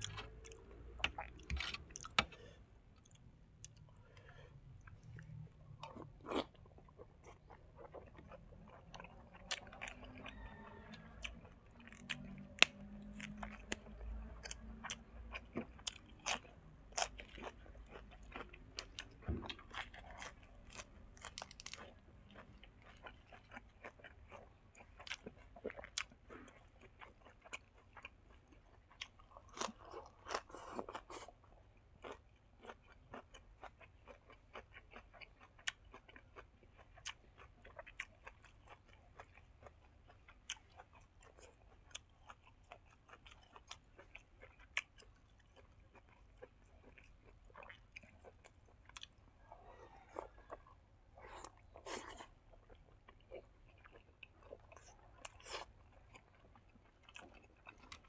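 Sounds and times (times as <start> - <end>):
chewing crisp leafy greens: 3.0 - 58.0.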